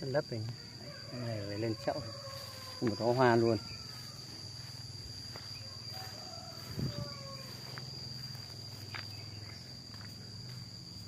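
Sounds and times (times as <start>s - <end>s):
insect trilling: 0.0s - 11.0s.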